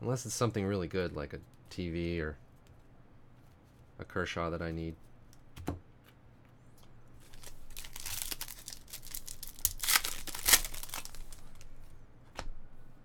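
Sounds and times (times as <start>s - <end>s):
foil wrapper tearing and crinkling: 7.2s - 11.6s.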